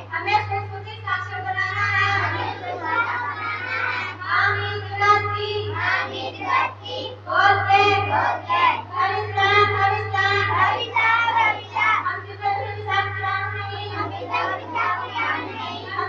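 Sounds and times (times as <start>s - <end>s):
steady low hum: 0.0s - 16.0s
children singing: 2.2s - 4.6s, 5.6s - 16.0s.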